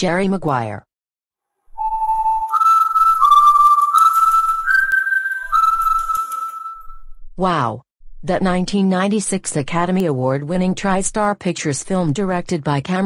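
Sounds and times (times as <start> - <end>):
whistled tune: 1.7 - 7.2.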